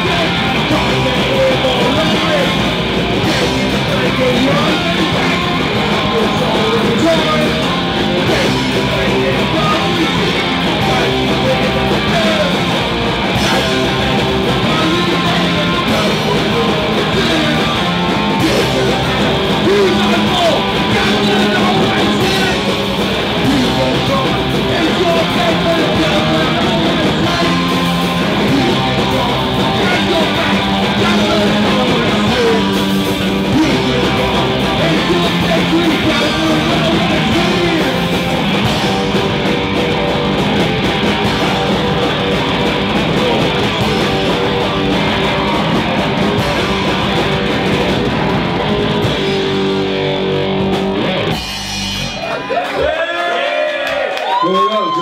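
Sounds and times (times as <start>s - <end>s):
man singing: 0.0s - 39.5s, 41.0s - 42.5s
drum kit: 0.0s - 52.8s
electric guitar: 0.0s - 52.9s
bass guitar: 0.0s - 53.5s.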